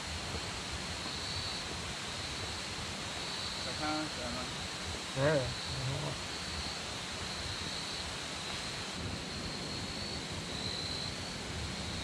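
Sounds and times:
high-pitched insect chorus: 0.2s - 12.0s.

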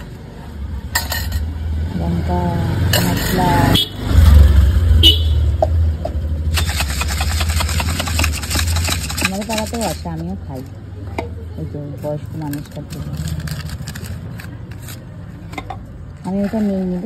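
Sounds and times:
low traffic rumble: 0.0s - 17.0s
snack mix rattling in plastic cups: 6.5s - 10.4s, 12.4s - 15.0s.

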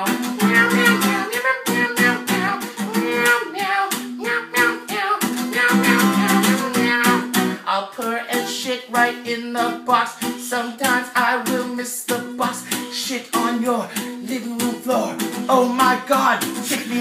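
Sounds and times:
acoustic guitar strumming: 0.0s - 17.0s
man singing: 0.0s - 17.0s.

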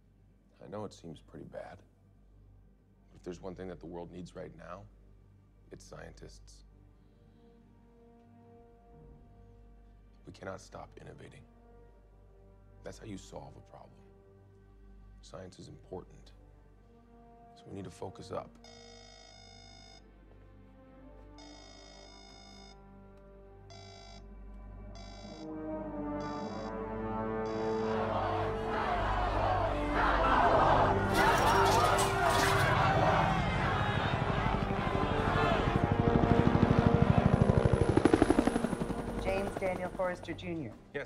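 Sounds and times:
film score music: 0.0s - 41.0s
helicopter rotor beating: 31.0s - 40.6s.

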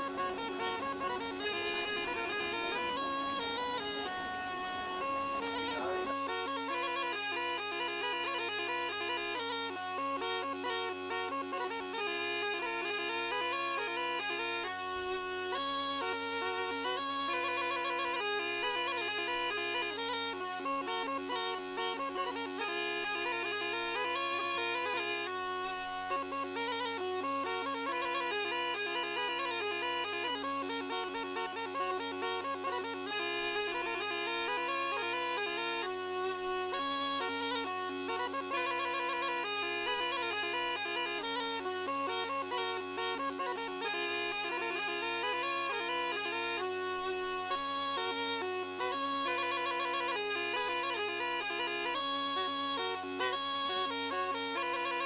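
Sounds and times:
accordion bass drone: 0.0s - 55.0s
button accordion melody: 0.0s - 55.0s.

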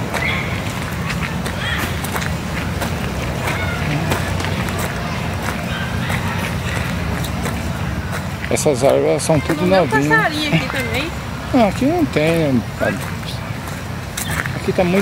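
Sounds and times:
low outdoor rumble: 0.0s - 8.8s
faint distant voices: 0.0s - 15.0s
footsteps on dirt trail: 0.0s - 15.0s.

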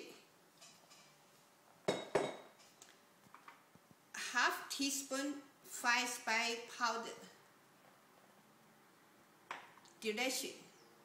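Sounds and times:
glass bottle knocking on countertop: 1.9s - 2.5s.

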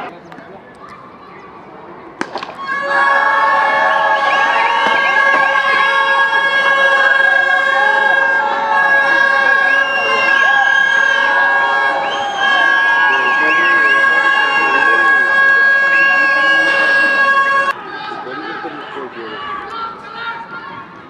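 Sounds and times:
horn-like tones held steadily: 2.2s - 20.7s
short whistles looping up and down: 9.4s - 17.2s.

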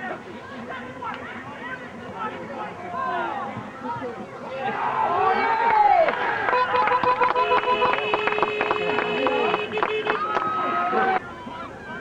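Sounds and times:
spectators' voices: 0.0s - 12.0s
scattered clapping: 5.6s - 11.3s
horn blasts: 6.5s - 10.5s.

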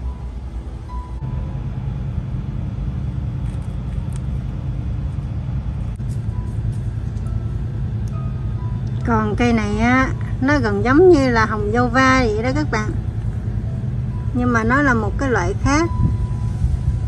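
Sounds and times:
low rumble: 0.0s - 17.0s.

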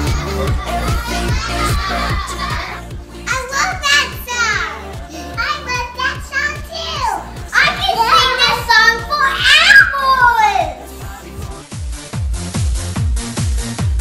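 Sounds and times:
upbeat music with steady beat: 0.0s - 14.0s
children shrieking excitedly: 7.8s - 10.8s.

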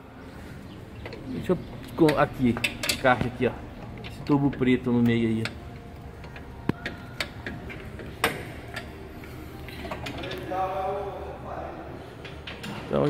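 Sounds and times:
tools clicking and knocking: 1.0s - 9.0s.

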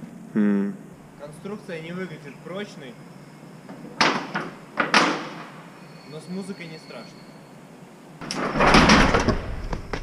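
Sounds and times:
bangs on sheet-metal roof: 4.0s - 5.5s, 8.4s - 10.0s.

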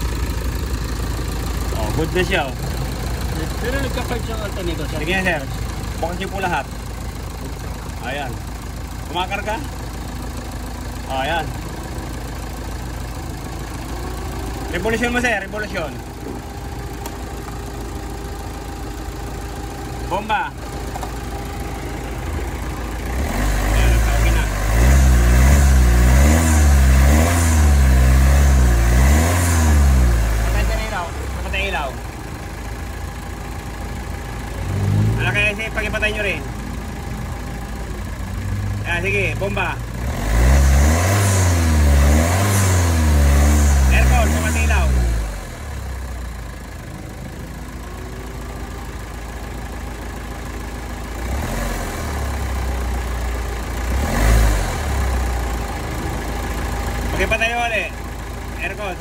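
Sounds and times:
car engine idling and revving: 0.0s - 59.0s.

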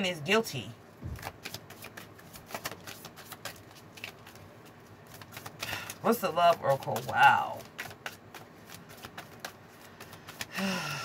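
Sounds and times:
cards being shuffled: 1.0s - 10.6s.

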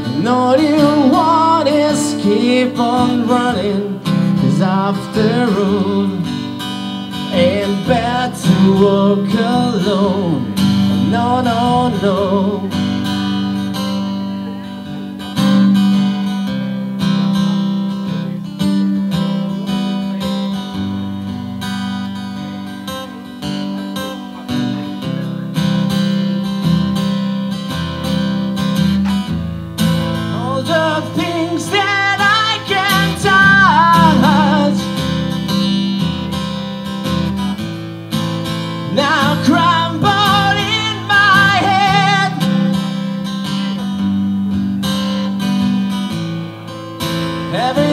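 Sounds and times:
acoustic guitar strummed: 0.0s - 47.9s.

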